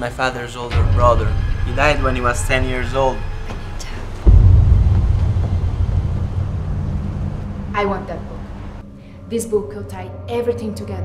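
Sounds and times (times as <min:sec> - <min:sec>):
deep boom hit: 0:00.7 - 0:08.9
low rumble: 0:00.7 - 0:10.5.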